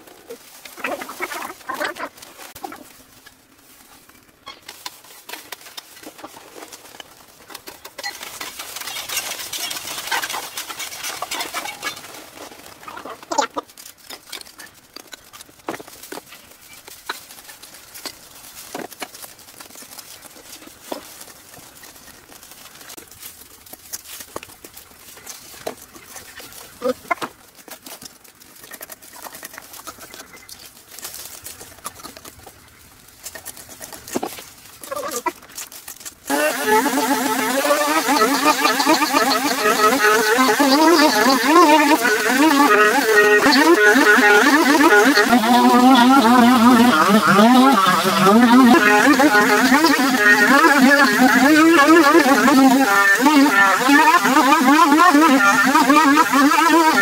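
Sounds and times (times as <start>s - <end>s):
chickens clucking: 0.0s - 3.4s, 7.5s - 13.9s, 25.6s - 27.4s, 36.3s - 57.0s
dry leaves and twigs rustling: 0.0s - 57.0s
twigs snapping: 0.0s - 57.0s.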